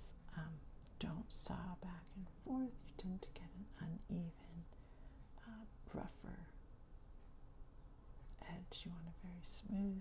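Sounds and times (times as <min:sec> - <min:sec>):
woman talking softly: 0:00.0 - 0:04.7, 0:05.4 - 0:06.6, 0:08.4 - 0:10.0.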